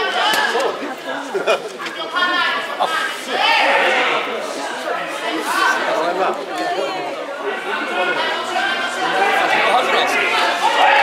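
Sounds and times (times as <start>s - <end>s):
voices shouting at ringside: 0.0s - 0.8s, 1.9s - 11.0s.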